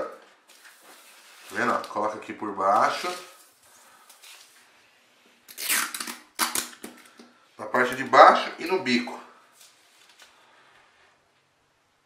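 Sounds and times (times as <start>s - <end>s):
tissue paper rustling: 0.3s - 4.8s.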